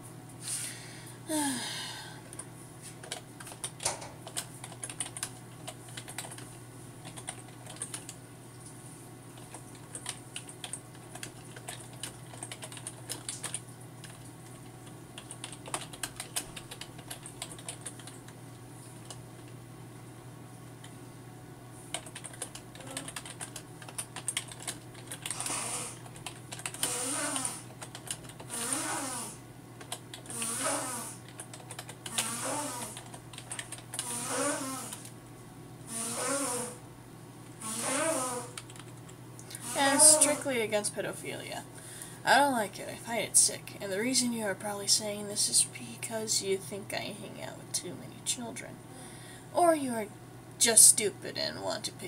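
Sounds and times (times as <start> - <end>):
keyboard typing: 3.0 - 8.2, 9.4 - 18.4, 21.9 - 28.6, 29.8 - 30.5, 31.2 - 34.1, 38.6 - 39.1
person making wordless sounds: 39.5 - 40.7.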